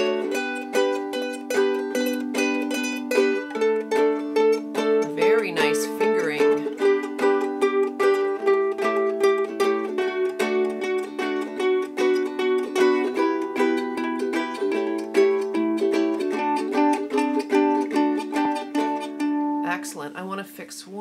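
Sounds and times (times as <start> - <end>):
ukuleles plucking a scale: 0.0 - 19.8.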